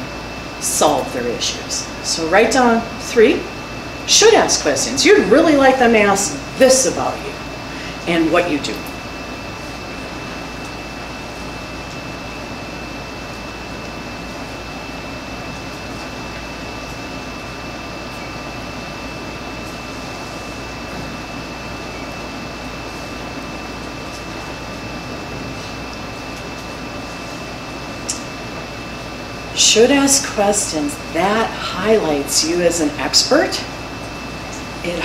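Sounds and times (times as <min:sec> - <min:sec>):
thin high whine: 0:00.0 - 0:35.0.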